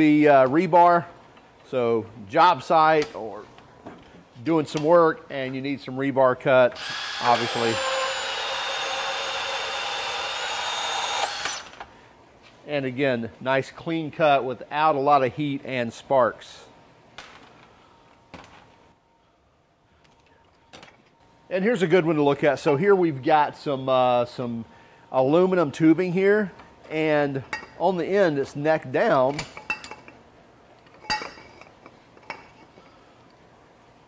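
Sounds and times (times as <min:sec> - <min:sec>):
faint knocks and clinks of steel: 0:30.8 - 0:33.0.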